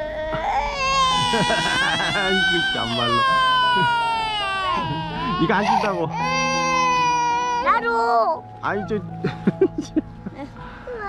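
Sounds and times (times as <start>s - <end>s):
toddler crying: 0.0s - 8.4s.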